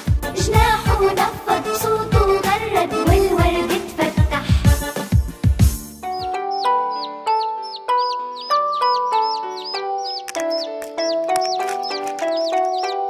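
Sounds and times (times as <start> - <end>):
instrumental children's song: 0.0 - 13.0
high chick-like peeping chirp: 6.0 - 13.0.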